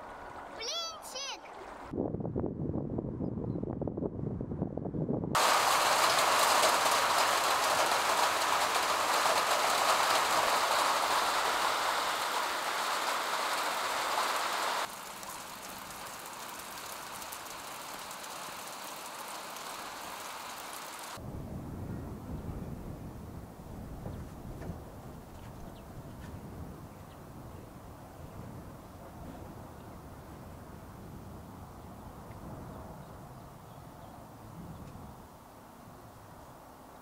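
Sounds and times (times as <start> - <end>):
steady rain falling: 5.4 - 21.3.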